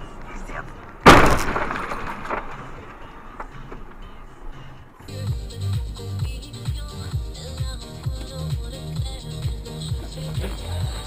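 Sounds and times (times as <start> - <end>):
car crash impact: 0.8 - 5.1
weaker bang: 1.0 - 4.9.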